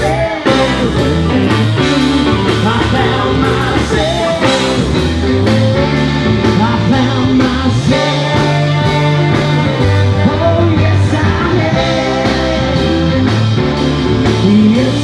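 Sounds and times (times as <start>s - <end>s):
saxophone: 0.0s - 7.2s
blues-rock band playing: 0.0s - 15.0s
steady drum beat: 0.0s - 15.0s.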